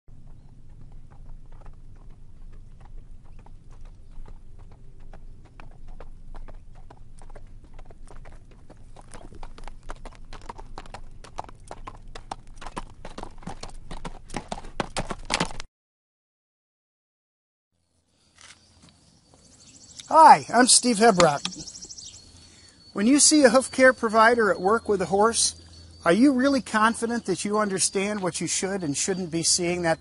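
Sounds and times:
horse hoofbeats clip-clopping: 0:00.1 - 0:15.6.

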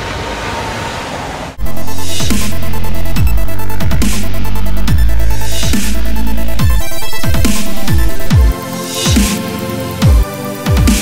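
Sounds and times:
steady rushing noise: 0:01.5 - 0:08.7
dubstep music with heavy bass: 0:01.6 - 0:11.0.

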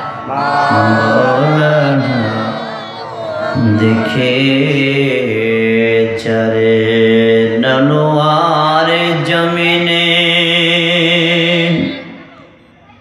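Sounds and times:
man chanting into a microphone: 0:00.3 - 0:02.8, 0:03.4 - 0:12.6.

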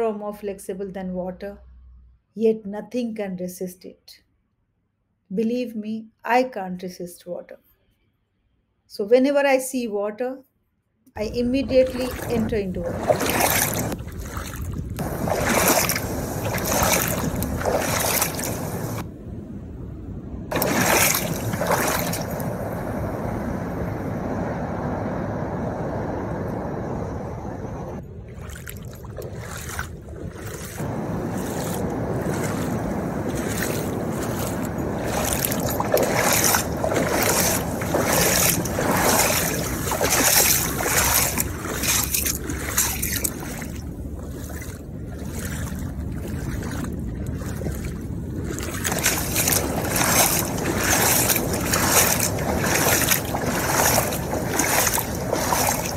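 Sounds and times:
wind: 0:00.0 - 0:08.2, 0:11.0 - 0:55.9
rushing water: 0:11.2 - 0:19.0, 0:20.5 - 0:23.9, 0:28.3 - 0:55.9
feet splashing in shallow water: 0:11.4 - 0:19.0, 0:20.5 - 0:22.7, 0:28.3 - 0:55.9.

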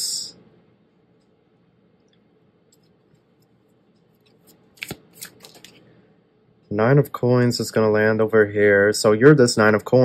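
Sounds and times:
cards snapping and sliding: 0:04.4 - 0:05.8.

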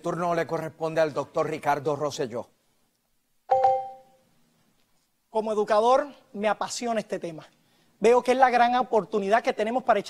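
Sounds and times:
two-tone electronic chime: 0:03.5 - 0:04.2.

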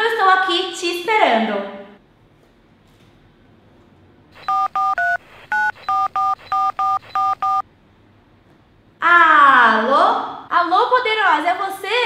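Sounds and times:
telephone keypad beeps: 0:04.4 - 0:07.6.

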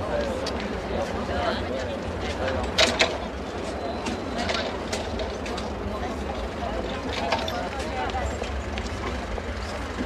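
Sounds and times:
vehicle engine rumbling: 0:02.0 - 0:10.0.

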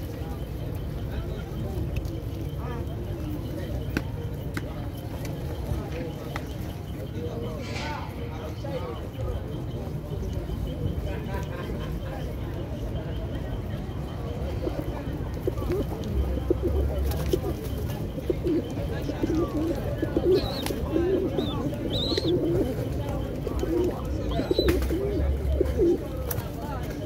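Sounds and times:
pigeons cooing: 0:00.0 - 0:27.0.

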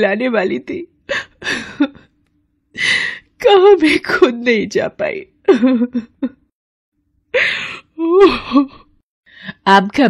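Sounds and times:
woman crying in distress: 0:01.1 - 0:02.0, 0:07.3 - 0:09.0.

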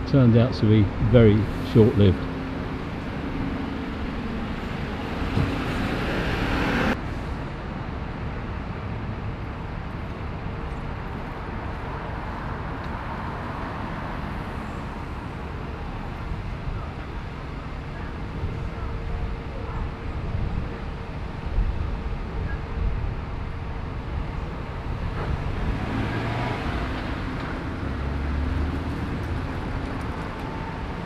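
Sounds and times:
bus idling: 0:00.0 - 0:25.8
street traffic: 0:00.0 - 0:31.0.

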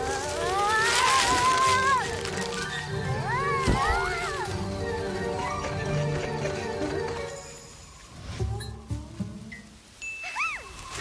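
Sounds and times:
cartoon background music: 0:01.8 - 0:09.7.

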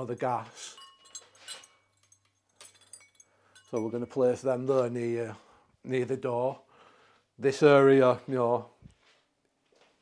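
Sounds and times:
metal wind chimes clinking: 0:00.0 - 0:05.4.

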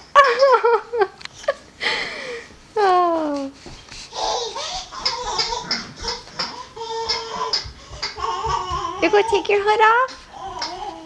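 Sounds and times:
toddler laughing: 0:04.2 - 0:09.4.

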